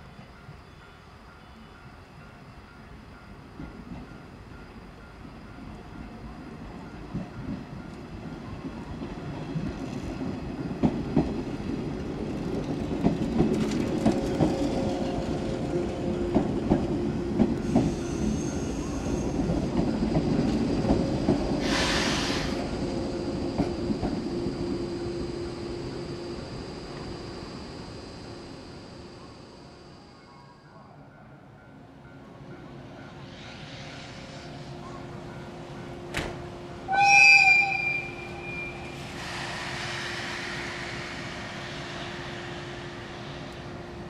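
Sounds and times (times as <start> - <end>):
electric train passing: 0.0 - 44.0
air hiss: 21.6 - 22.8, 38.8 - 43.6.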